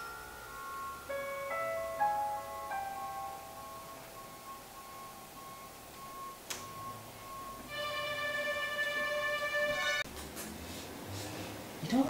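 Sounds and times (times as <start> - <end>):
electronic keyboard high note pulsing: 0.0 - 10.0
lower keyboard notes: 0.0 - 10.1.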